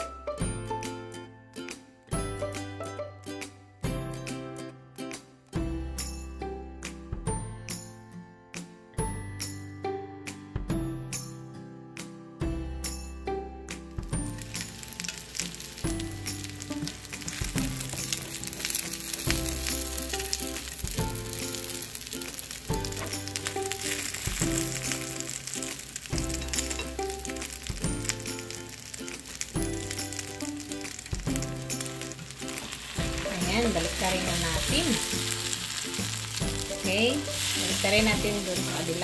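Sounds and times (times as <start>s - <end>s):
background music with beat: 0.0s - 39.0s
food sizzling in oil: 14.0s - 39.0s.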